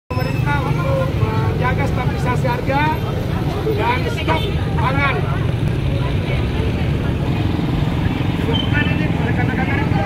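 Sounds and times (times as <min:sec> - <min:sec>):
people talking: 0:00.1 - 0:10.0.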